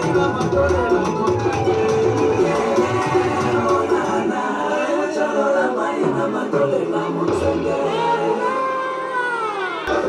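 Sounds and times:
dance music: 0:00.0 - 0:10.0
voices singing together: 0:00.0 - 0:10.0.

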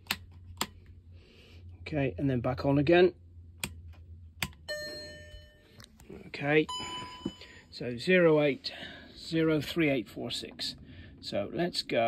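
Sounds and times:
bell-like chime: 0:06.7 - 0:07.6.

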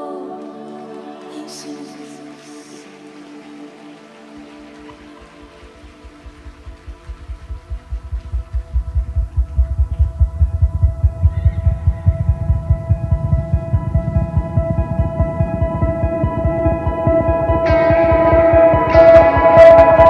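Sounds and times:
keyboard pad chord: 0:00.0 - 0:20.0
pulsing bass: 0:05.2 - 0:20.0.

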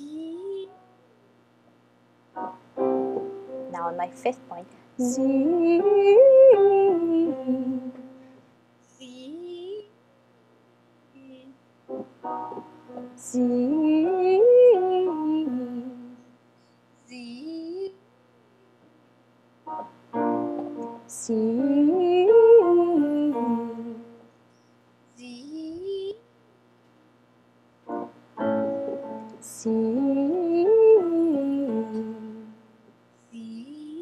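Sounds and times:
woman singing vocal warm-up: 0:00.0 - 0:00.9, 0:03.7 - 0:08.3, 0:08.9 - 0:10.0, 0:11.1 - 0:11.6, 0:13.1 - 0:16.4, 0:17.1 - 0:18.0, 0:21.1 - 0:24.3, 0:25.2 - 0:26.3, 0:29.4 - 0:34.0
piano chord: 0:02.4 - 0:08.3, 0:11.9 - 0:15.6, 0:19.7 - 0:21.1, 0:27.9 - 0:29.4.

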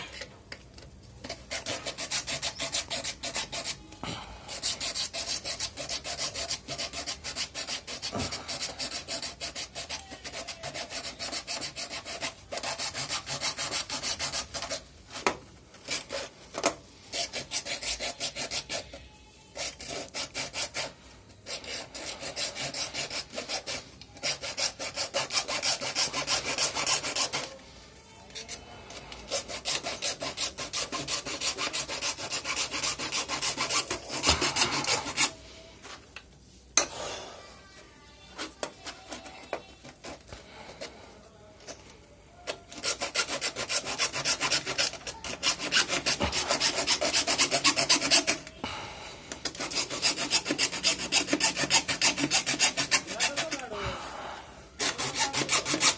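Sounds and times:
hand saw cutting plastic: 0:01.2 - 0:03.8, 0:04.5 - 0:19.0, 0:19.6 - 0:27.6, 0:28.3 - 0:35.4, 0:42.7 - 0:48.5, 0:49.4 - 0:53.8, 0:54.8 - 0:55.9.

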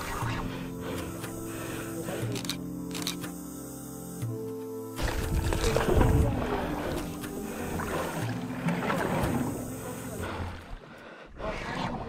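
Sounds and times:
background music held notes: 0:00.0 - 0:11.0
wind and sea buffeting camera: 0:05.1 - 0:08.2.

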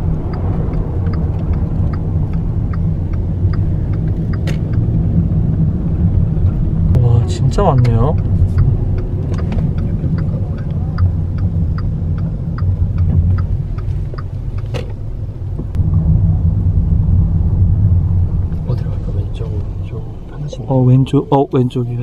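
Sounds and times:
car cabin engine and road rumble: 0:00.0 - 0:22.0.

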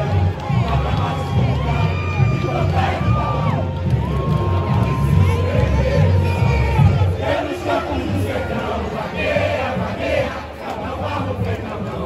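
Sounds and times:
bass drums beating: 0:00.0 - 0:07.4
crowd cheering and shouting: 0:00.0 - 0:12.0
samba drum band playing: 0:00.0 - 0:12.0.

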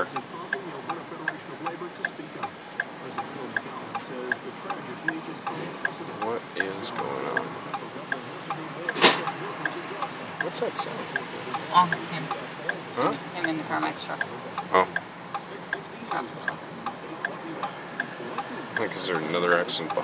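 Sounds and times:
sharp click: 0:08.8 - 0:09.4.

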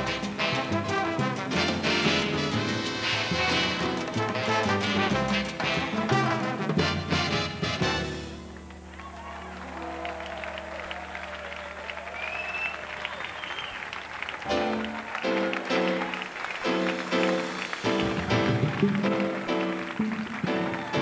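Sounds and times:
salsa band chords: 0:00.0 - 0:09.0, 0:14.5 - 0:21.0
audience applause and cheering: 0:00.0 - 0:21.0.

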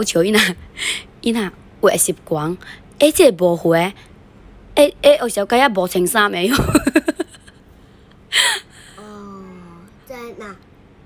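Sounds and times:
person laughing: 0:06.5 - 0:07.5.

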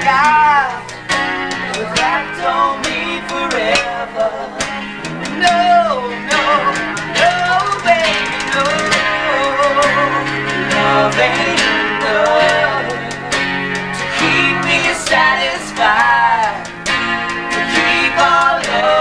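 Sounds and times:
lead acoustic guitar bending notes: 0:00.0 - 0:19.0
strummed acoustic guitar chords: 0:00.0 - 0:19.0.

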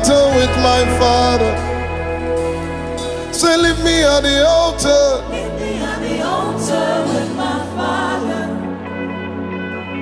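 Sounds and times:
choir singing gospel song: 0:00.0 - 0:10.0
sustained instrumental chords: 0:00.0 - 0:10.0.

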